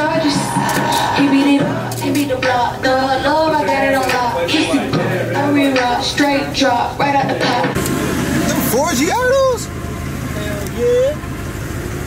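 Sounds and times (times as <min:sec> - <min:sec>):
people's voices: 0:00.0 - 0:09.7, 0:10.3 - 0:11.2
car engine idling: 0:00.0 - 0:12.0.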